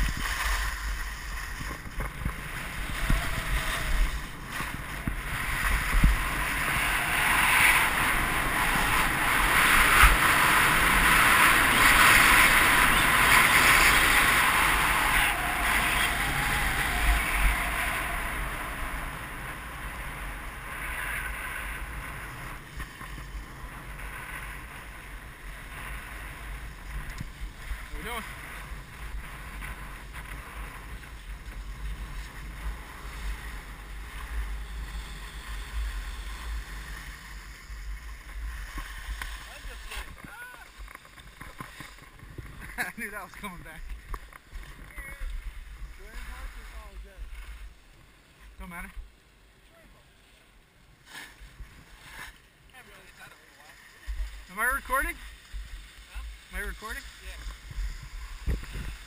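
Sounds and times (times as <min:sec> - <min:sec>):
skis scraping on snow: 0:00.0 - 0:48.9, 0:50.2 - 0:59.0
wind rushing over microphone: 0:00.0 - 0:49.1, 0:53.8 - 0:59.0.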